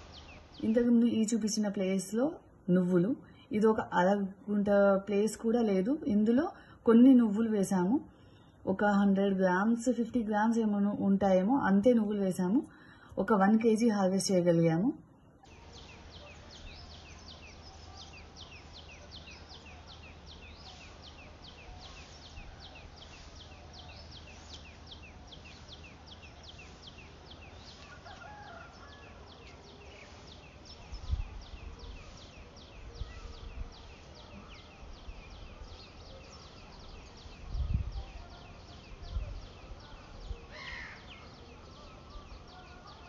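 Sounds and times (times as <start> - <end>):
low rumbles on microphone: 30.6 - 35.9, 36.8 - 40.5.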